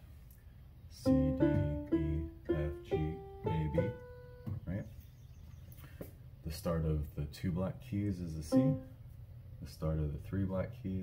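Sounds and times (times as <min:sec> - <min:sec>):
electronic keyboard notes: 0:00.9 - 0:04.9, 0:08.4 - 0:09.0.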